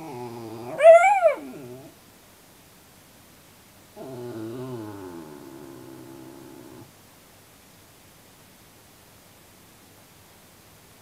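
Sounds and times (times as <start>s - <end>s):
dog howling: 0.0s - 1.9s, 4.0s - 6.9s.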